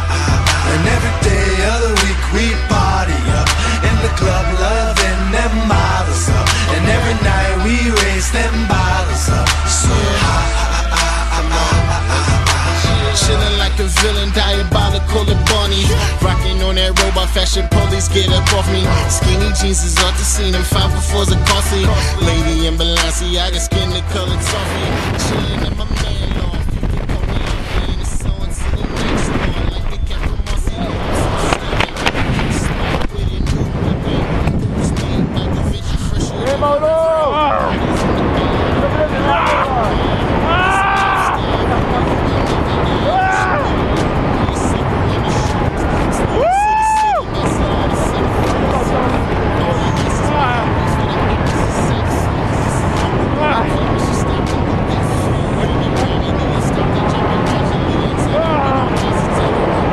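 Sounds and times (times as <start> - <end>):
freefall wind buffeting microphone: 0.0 - 59.9
pop song: 0.0 - 59.9.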